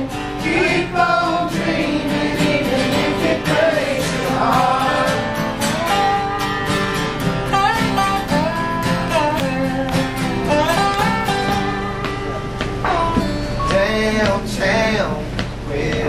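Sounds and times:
acoustic guitars strummed: 0.0s - 16.0s.

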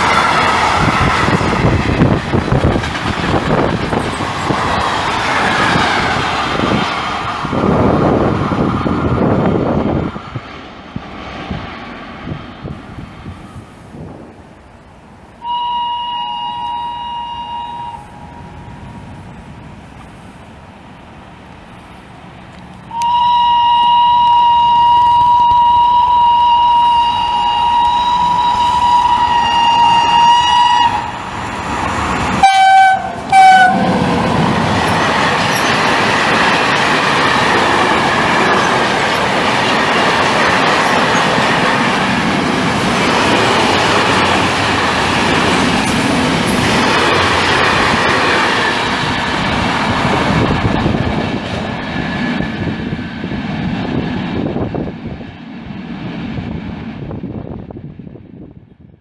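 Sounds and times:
train wheels clattering: 0.0s - 9.1s, 33.1s - 53.2s
locomotive horn blasts: 15.4s - 18.8s, 22.9s - 31.2s, 32.4s - 34.4s.

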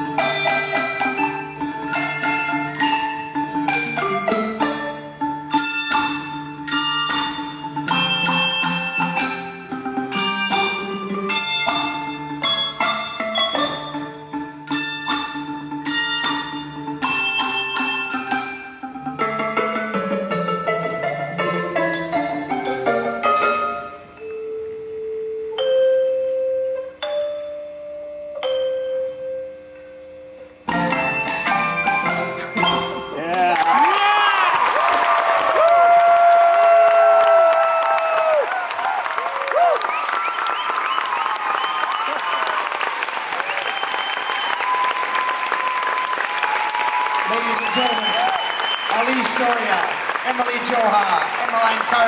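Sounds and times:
handbell chords ringing: 0.2s - 19.4s, 25.6s - 29.4s.

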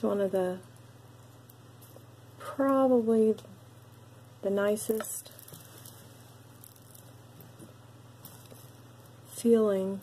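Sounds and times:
steady low hum: 0.0s - 10.0s
beads softly clicking: 0.6s - 9.5s.

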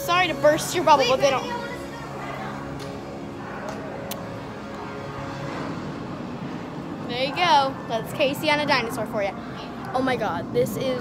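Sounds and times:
low hall hum: 0.0s - 11.0s.

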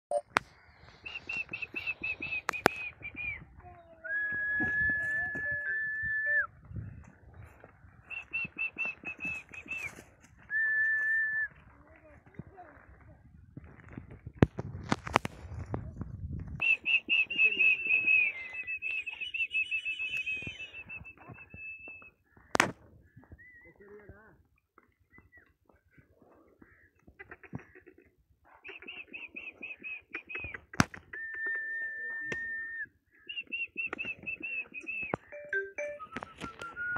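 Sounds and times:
sharp clicks: 2.4s - 3.0s
person whistling high notes: 4.1s - 6.5s.

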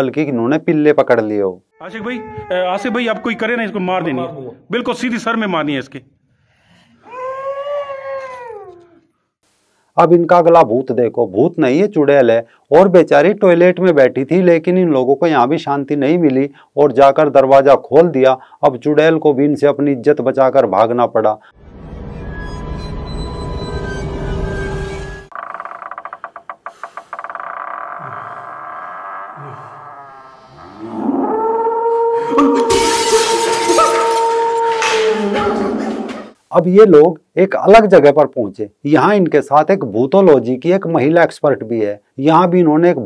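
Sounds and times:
man whining wail: 1.8s - 3.7s, 7.1s - 9.0s, 31.7s - 36.0s.

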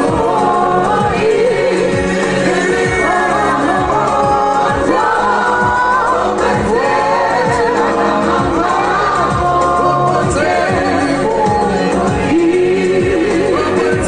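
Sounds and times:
amplified backing music with beat: 0.0s - 14.0s
vocal group singing: 0.0s - 14.0s.

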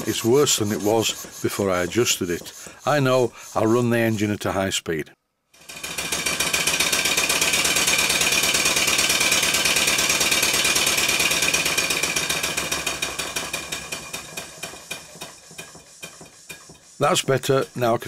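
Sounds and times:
model steam engine exhaust beats: 0.0s - 4.2s, 5.8s - 18.0s.

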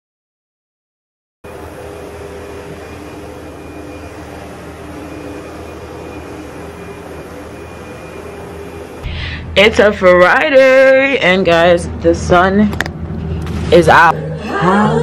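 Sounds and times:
vacuum cleaner running: 1.5s - 12.6s.

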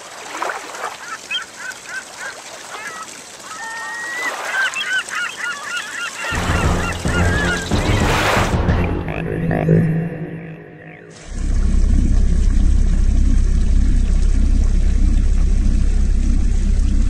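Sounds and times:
water splashing: 0.0s - 9.2s
birds chirping: 2.8s - 11.2s
low droning music: 6.4s - 17.0s.

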